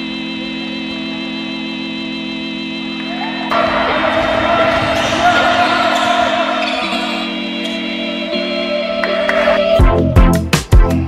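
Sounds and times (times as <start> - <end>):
players calling out: 3.0 - 10.2.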